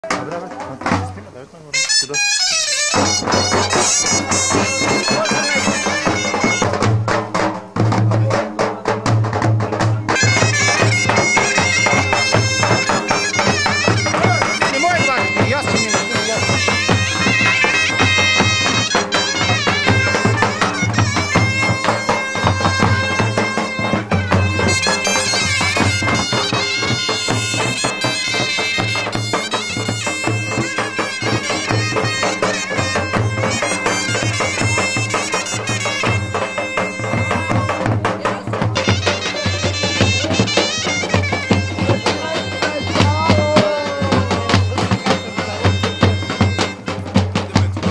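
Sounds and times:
low drum beat: 0.0s - 47.9s
bagpipe folk melody: 1.6s - 8.4s, 9.0s - 47.9s
bagpipe drone: 1.8s - 7.1s, 10.1s - 47.9s.

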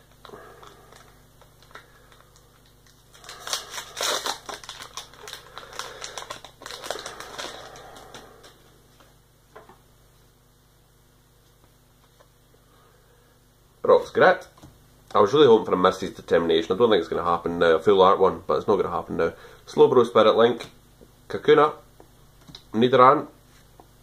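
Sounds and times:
foil wrapper tearing and crinkling: 0.2s - 8.2s.

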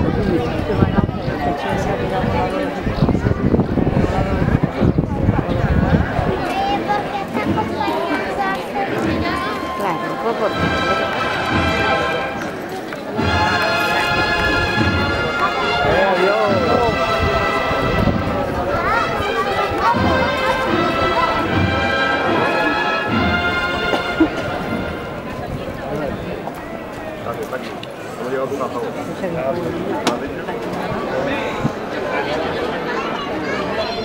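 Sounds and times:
crowd voices: 0.0s - 34.0s
steady drum beat: 9.0s - 12.4s, 13.2s - 26.9s
brass playing held chords: 10.0s - 12.6s, 13.2s - 25.6s.

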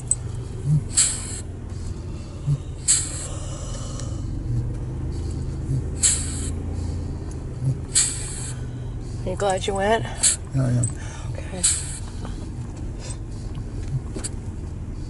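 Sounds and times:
car engine and road hum: 0.0s - 15.0s
short hissing bursts: 0.8s - 1.5s, 2.8s - 3.9s, 6.0s - 6.8s, 7.9s - 8.7s, 10.1s - 10.5s, 11.6s - 12.2s.

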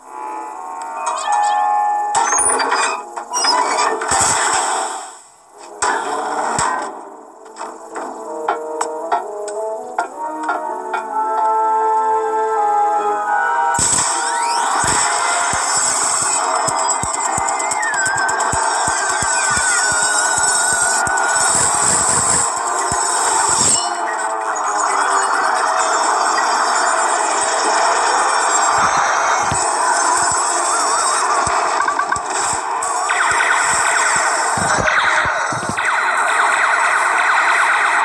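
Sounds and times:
sharp clicks: 15.4s - 23.1s.

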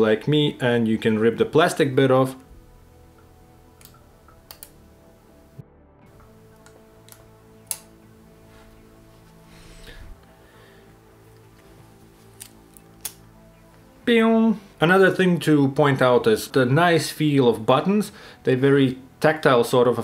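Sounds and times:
faint background music: 0.0s - 20.0s.

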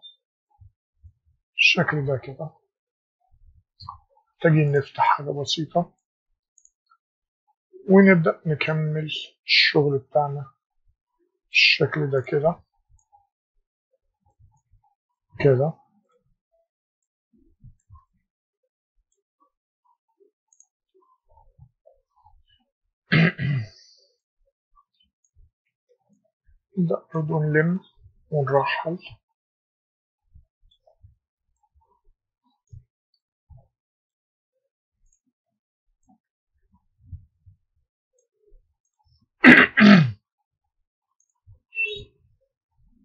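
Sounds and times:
man clearing his throat: 23.1s - 23.8s, 39.4s - 40.2s.

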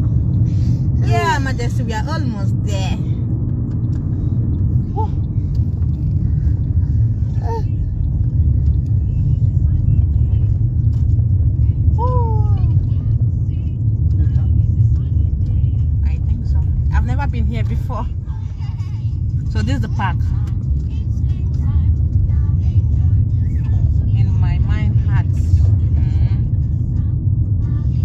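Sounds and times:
car cabin road and engine rumble: 0.0s - 28.0s.

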